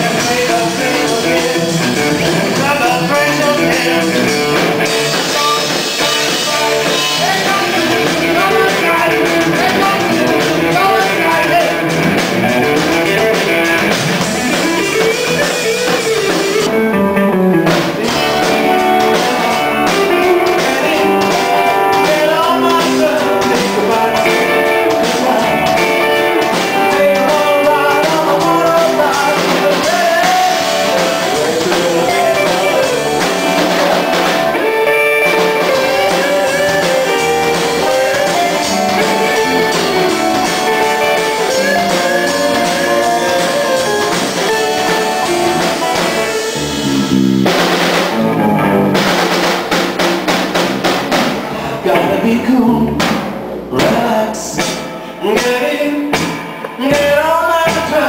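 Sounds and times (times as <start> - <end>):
drum kit beat on cymbals: 0.0 - 16.7, 17.7 - 52.1, 52.9 - 58.0
electric guitar melody: 0.0 - 58.0.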